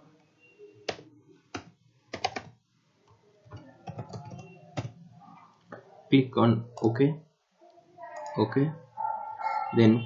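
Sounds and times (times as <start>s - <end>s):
computer keyboard typing: 0.8s - 2.6s, 3.4s - 5.0s.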